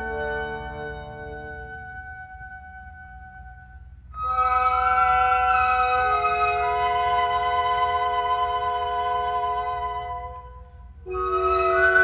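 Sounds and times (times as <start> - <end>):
low recording rumble: 0.0 - 12.0.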